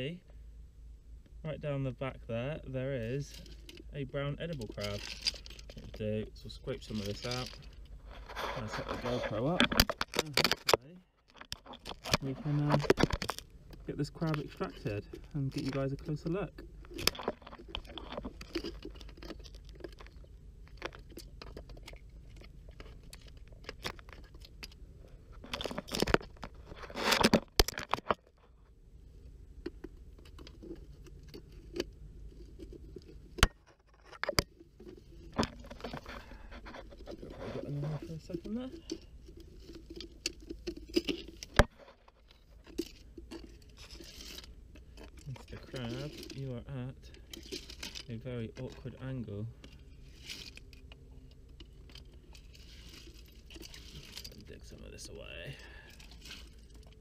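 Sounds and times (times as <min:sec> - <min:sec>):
metal rod scraping rock: 0:03.0 - 0:10.8, 0:32.5 - 0:50.8.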